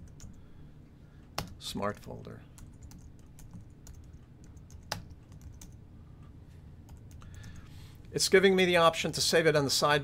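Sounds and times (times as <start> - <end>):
keyboard keystrokes: 2.6 - 5.8.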